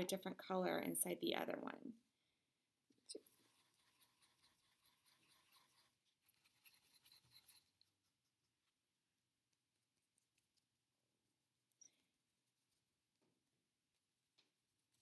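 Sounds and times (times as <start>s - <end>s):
paintbrush scrubbing paint: 3.0s - 15.0s.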